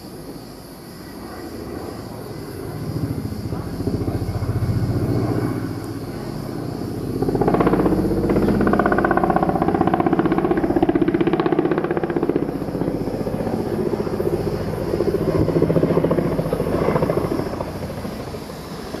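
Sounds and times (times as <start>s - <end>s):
engine running with fast beat: 2.7s - 19.0s.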